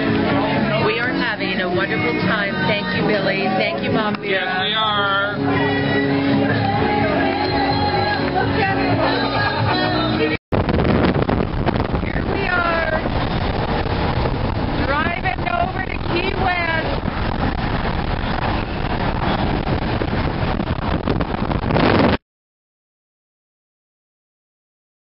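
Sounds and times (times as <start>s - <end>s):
voices: 0.0s - 10.4s, 12.0s - 13.1s, 14.8s - 17.0s
wind and road noise in car: 0.0s - 22.2s.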